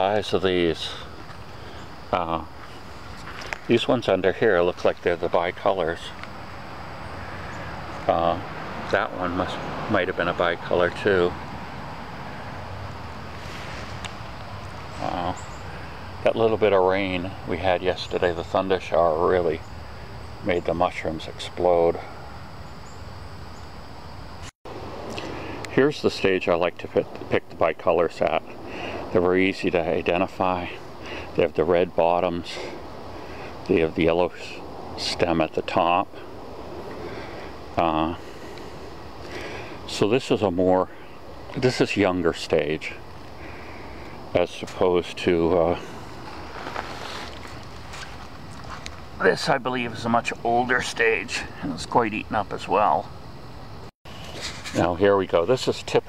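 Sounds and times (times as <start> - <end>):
woodland background hiss: 0.0 - 56.0.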